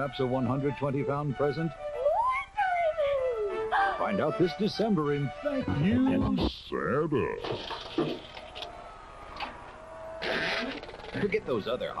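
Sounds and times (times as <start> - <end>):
background music: 0.0 - 6.5
drawn-out howl: 8.2 - 11.0.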